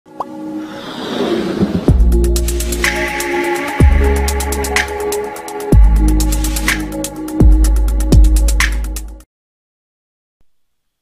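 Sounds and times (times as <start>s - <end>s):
electronic intro music: 0.2s - 9.2s
deep bass hit: 1.7s - 2.5s.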